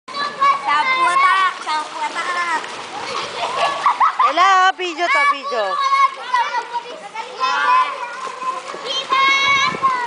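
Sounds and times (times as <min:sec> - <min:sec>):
children shouting: 0:00.1 - 0:04.4, 0:05.1 - 0:10.0
pool water splashing: 0:00.1 - 0:10.0.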